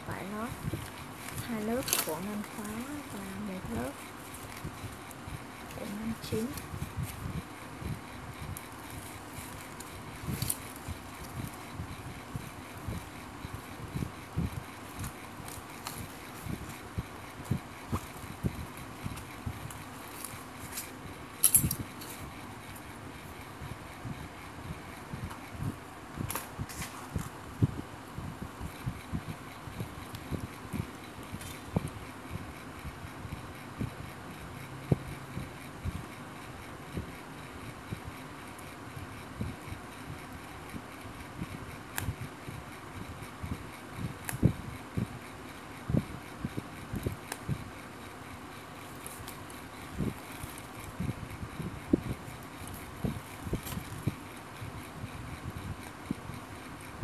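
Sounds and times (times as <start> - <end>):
steady background hiss: 0.0 - 57.0
needle and thread clicks and rustles: 0.1 - 23.6, 28.6 - 32.9, 48.5 - 56.2.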